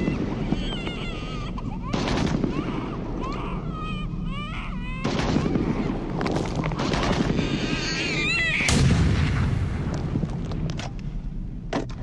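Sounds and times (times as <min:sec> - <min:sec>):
rumbling crackle of gunfire: 0:01.9 - 0:02.7, 0:05.0 - 0:07.9, 0:08.6 - 0:11.8
sudden loud blast: 0:08.7 - 0:09.9.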